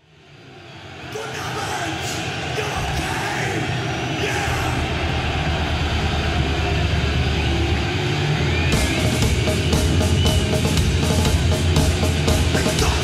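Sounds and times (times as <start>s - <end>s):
crowd noise: 0.0s - 13.0s
amplified guitars and bass drone: 4.5s - 13.0s
drums and cymbals: 8.6s - 13.0s.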